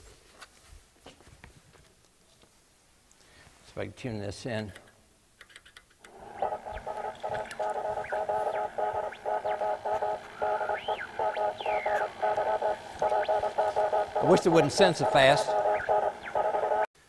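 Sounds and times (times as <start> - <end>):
faint radio static: 6.1 - 16.9
morse code beeps: 6.1 - 16.9
whistling pitch glides: 6.1 - 16.9.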